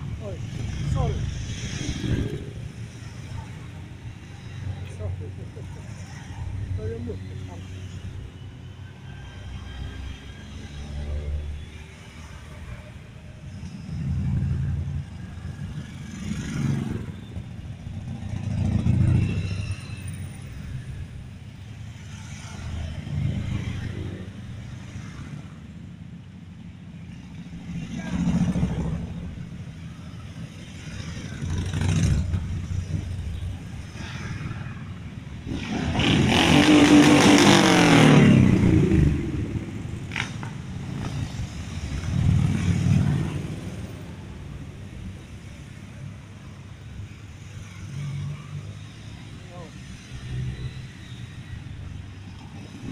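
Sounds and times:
motorcycles riding past: 27.4s - 44.6s.

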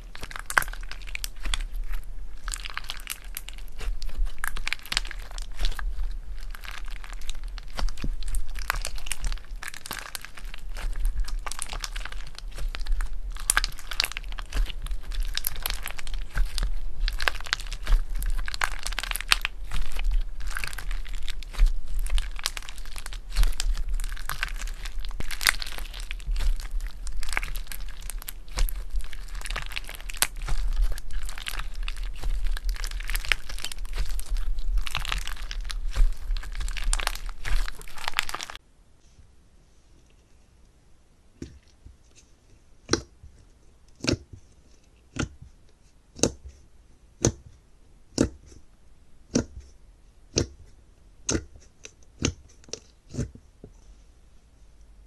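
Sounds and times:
slime crackling and popping: 0.0s - 38.6s, 46.1s - 46.5s, 50.3s - 53.3s.

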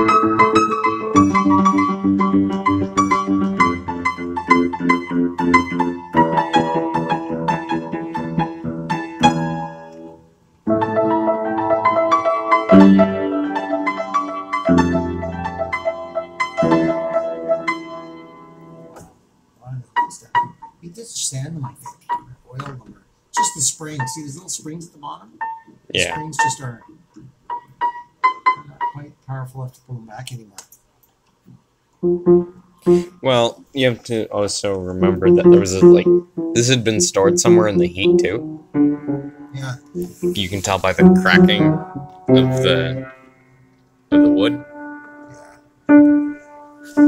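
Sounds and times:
out of tune piano playing: 0.0s - 19.1s, 19.8s - 21.0s, 23.4s - 29.7s, 32.0s - 33.5s, 34.7s - 47.0s
piano high note: 23.4s - 24.8s, 32.0s - 33.4s, 34.9s - 47.0s.

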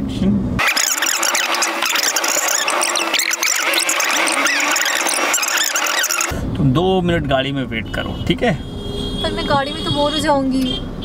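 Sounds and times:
sped-up chipmunk-like chatter: 0.7s - 6.3s.

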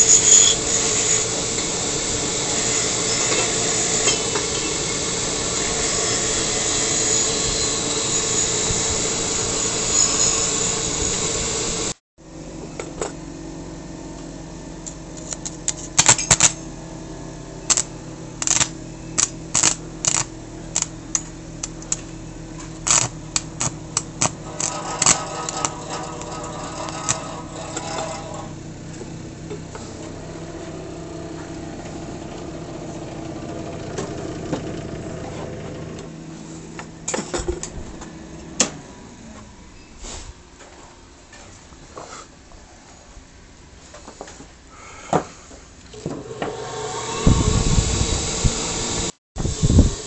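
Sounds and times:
welder humming: 0.0s - 39.2s, 45.9s - 50.0s
welding arc crackling and popping: 17.7s - 28.6s.

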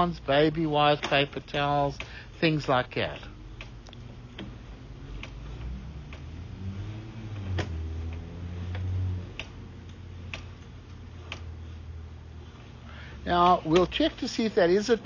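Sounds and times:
low hum: 0.0s - 13.7s.

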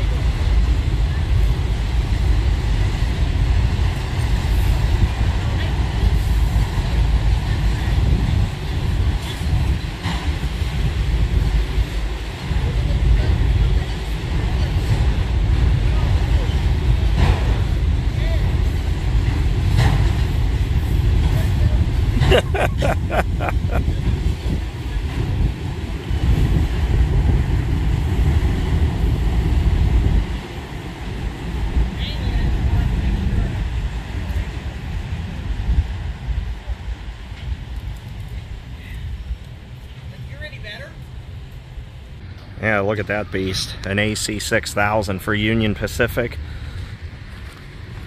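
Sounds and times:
rhythmic rail clacks: 0.0s - 38.4s
train wheels rumbling on rail: 0.0s - 48.0s.

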